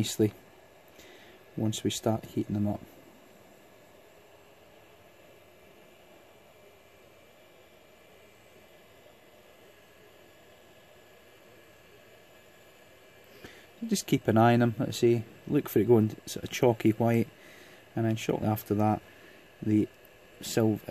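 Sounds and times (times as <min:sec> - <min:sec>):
hot-air station airflow hiss: 0:00.0 - 0:20.9.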